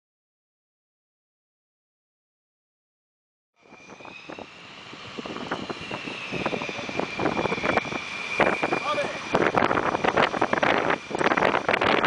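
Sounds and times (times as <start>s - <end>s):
jet engines running: 3.6s - 12.0s.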